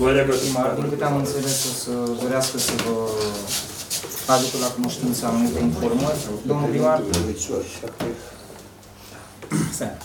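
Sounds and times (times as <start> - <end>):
person speaking: 0.0 - 8.3.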